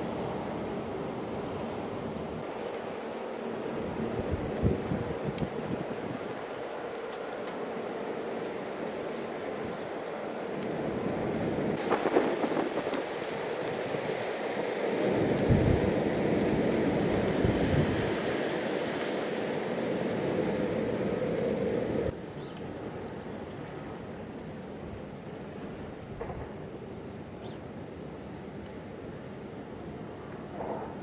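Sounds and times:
low rumbling wind gusts: 3.6s - 6.9s, 7.8s - 22.2s
wind blowing on microphone: 3.7s - 6.5s, 10.9s - 22.1s.

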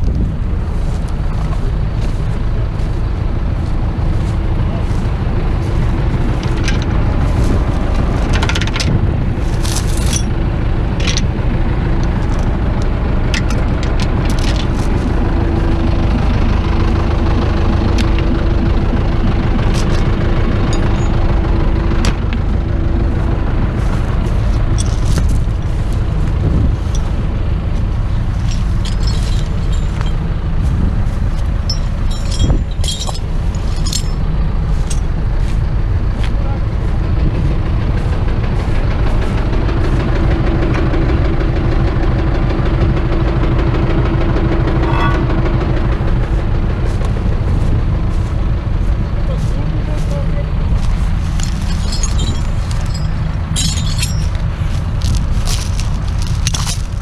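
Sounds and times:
steady hum: 0.0s - 42.2s
diesel tractor engine running: 0.0s - 57.0s.

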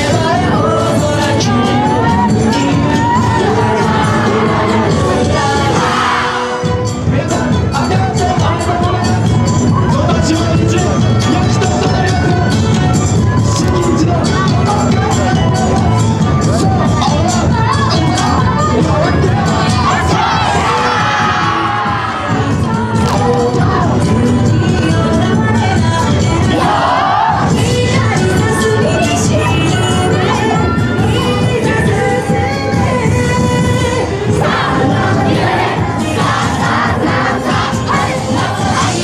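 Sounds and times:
loud dance music: 0.0s - 39.0s
crowd shouting together: 0.5s - 6.8s, 8.4s - 23.9s, 26.4s - 27.8s, 34.2s - 39.0s
group shouting rhythmic calls: 19.1s - 23.4s, 26.5s - 27.6s.

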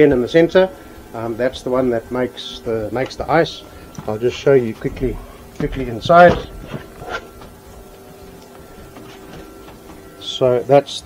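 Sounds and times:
electrical equipment hum: 0.0s - 11.0s.

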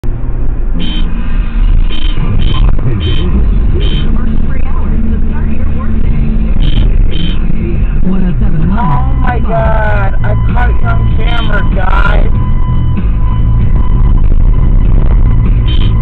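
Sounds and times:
car engine and road rumble: 0.0s - 16.0s.

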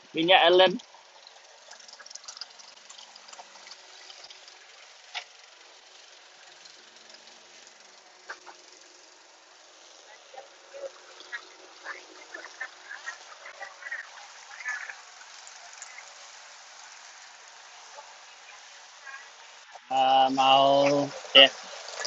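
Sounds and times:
lawn mower humming: 0.0s - 22.0s
string trimmer cutting grass: 0.8s - 22.0s.

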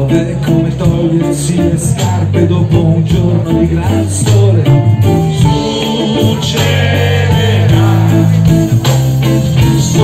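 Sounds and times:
double bass low notes: 0.0s - 10.0s
electric guitars: 0.0s - 10.0s.

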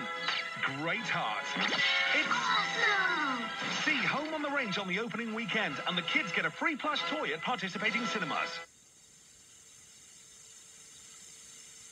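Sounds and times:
faint steady hum: 2.6s - 11.9s
faint steady hiss: 2.9s - 11.9s.

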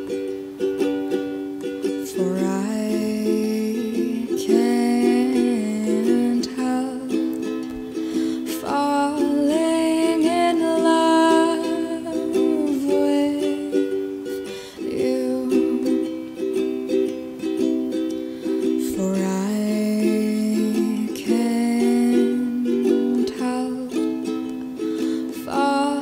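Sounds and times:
slow ukulele music: 0.0s - 26.0s.

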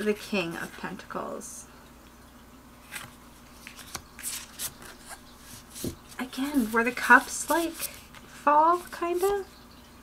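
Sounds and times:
faint steady hum: 0.0s - 10.0s
cards sliding and tapping: 2.9s - 9.4s.

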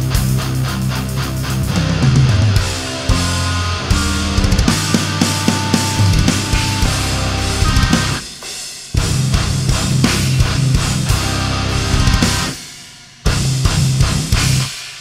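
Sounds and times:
progressive metal band playing: 0.0s - 14.8s.

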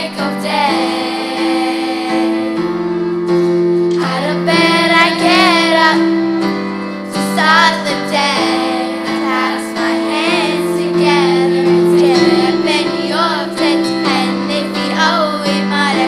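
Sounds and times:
girls' choir singing: 0.0s - 3.0s, 3.9s - 6.4s, 7.0s - 16.0s.

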